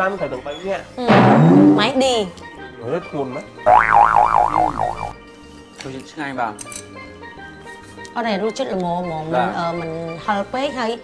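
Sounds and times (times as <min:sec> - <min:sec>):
cartoon boing sound effect: 0:03.7 - 0:05.2.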